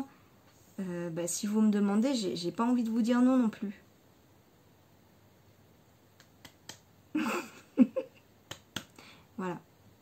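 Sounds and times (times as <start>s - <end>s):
woman's breathy laugh: 7.1s - 8.2s.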